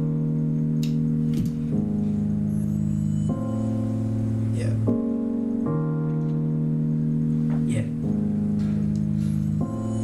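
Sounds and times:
hip-hop backing track chords: 0:00.0 - 0:10.0.

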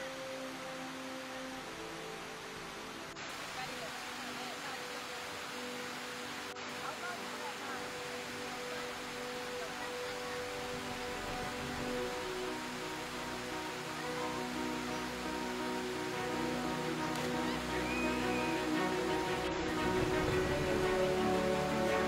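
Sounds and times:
music with long held notes: 0:00.0 - 0:22.0
steady background hiss: 0:00.0 - 0:22.0.

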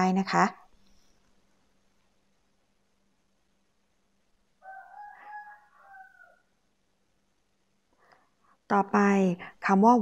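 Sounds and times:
faint animal call: 0:04.6 - 0:06.6.

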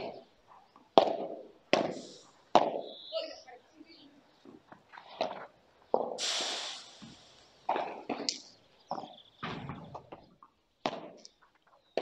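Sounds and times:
ball popping off rackets: 0:00.0 - 0:03.0, 0:07.0 - 0:11.4.

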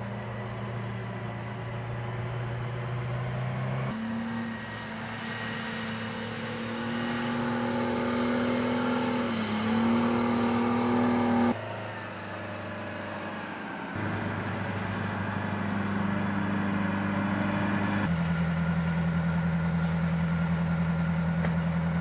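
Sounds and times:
military vehicle engines droning: 0:00.0 - 0:22.0.

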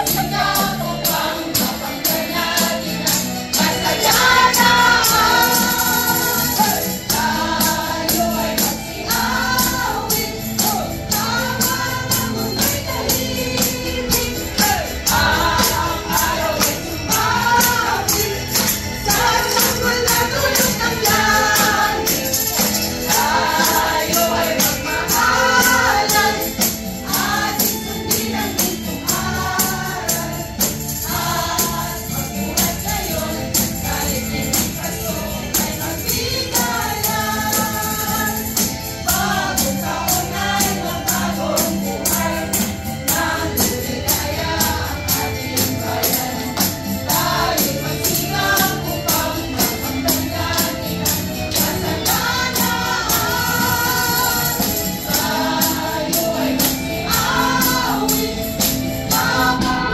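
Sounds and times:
backing music: 0:00.0 - 0:59.9
group singing a carol: 0:00.0 - 0:59.9
tambourine struck on the beat: 0:00.0 - 0:59.9.

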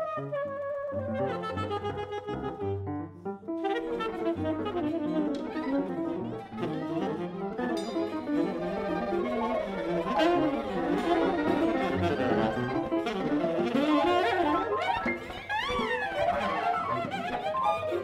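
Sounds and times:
jazz band playing: 0:00.0 - 0:18.0
piano: 0:00.0 - 0:18.0
saxophone melody: 0:00.0 - 0:18.0.

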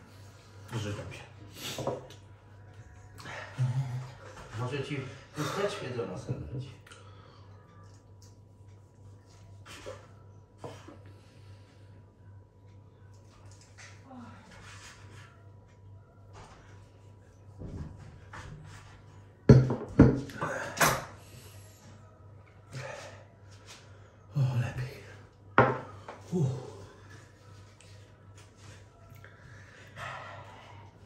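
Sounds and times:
faint low hum: 0:00.0 - 0:31.0.

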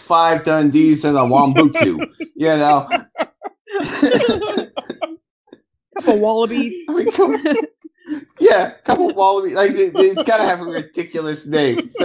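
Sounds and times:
people laughing: 0:01.1 - 0:05.2, 0:06.0 - 0:12.0.

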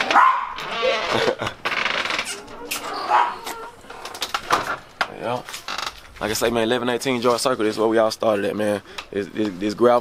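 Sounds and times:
small dog barking: 0:00.0 - 0:00.6, 0:03.0 - 0:03.5.

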